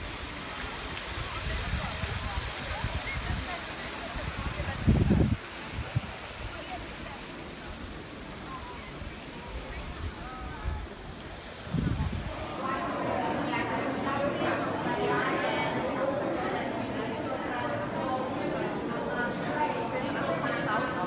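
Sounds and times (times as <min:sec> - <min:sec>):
fountain water hissing: 0:00.0 - 0:20.8
faint crowd voices: 0:00.0 - 0:21.0
wind buffeting microphone: 0:01.0 - 0:07.2, 0:08.6 - 0:12.6.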